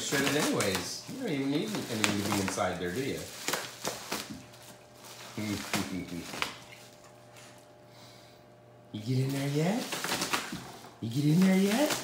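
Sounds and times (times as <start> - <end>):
paper crinkling and ripping: 0.0 - 7.1, 9.2 - 12.0.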